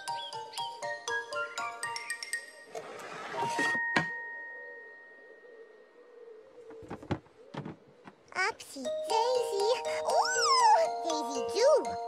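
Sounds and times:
soft knocks: 0:06.7 - 0:08.3.

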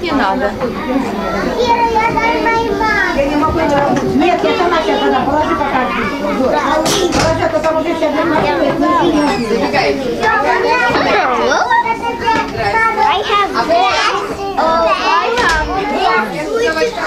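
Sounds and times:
young children talking and calling: 0:00.0 - 0:17.0.

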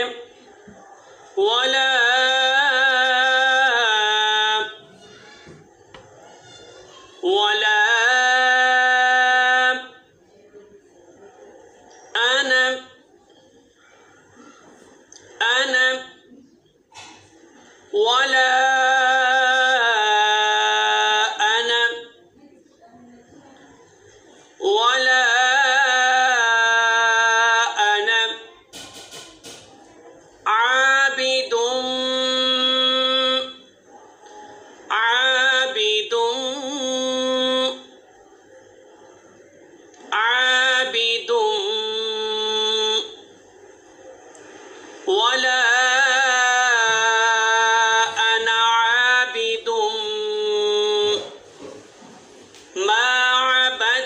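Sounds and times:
man chanting recitation: 0:00.0 - 0:05.0, 0:07.1 - 0:10.9, 0:12.1 - 0:13.1, 0:15.2 - 0:16.3, 0:17.7 - 0:22.3, 0:24.5 - 0:28.6, 0:30.4 - 0:33.8, 0:34.7 - 0:38.0, 0:40.1 - 0:43.3, 0:45.0 - 0:51.5, 0:52.8 - 0:54.0.

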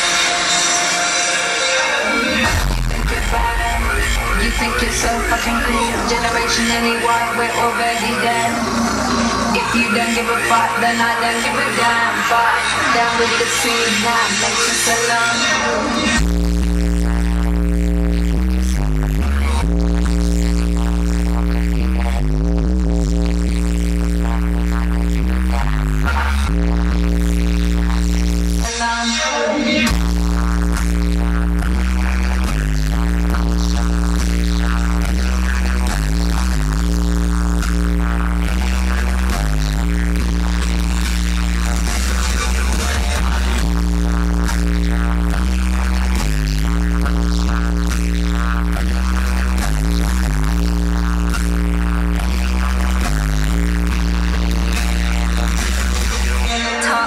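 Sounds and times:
noisy sweep: 0:00.0 - 0:18.2, 0:35.8 - 0:57.0
loud live electronic music: 0:00.0 - 0:57.0
sustained bass notes: 0:00.0 - 0:57.0.

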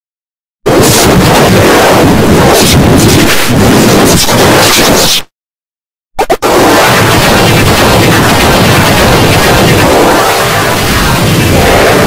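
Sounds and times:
loud distorted noise: 0:00.7 - 0:05.2, 0:06.2 - 0:12.0.

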